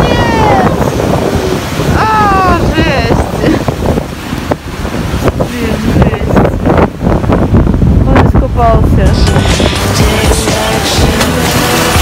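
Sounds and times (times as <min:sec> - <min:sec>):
heavy surf breaking on rocks: 0:00.0 - 0:12.0
wind buffeting microphone: 0:00.0 - 0:12.0.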